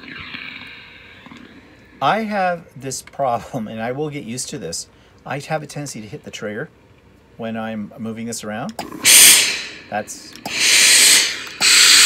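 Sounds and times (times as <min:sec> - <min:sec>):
steam iron hissing: 0:08.8 - 0:12.0.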